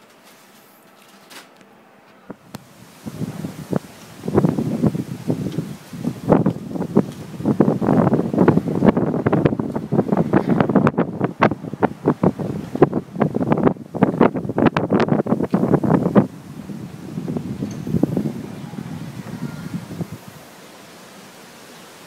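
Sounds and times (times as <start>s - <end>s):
wind buffeting microphone: 2.3s - 20.6s.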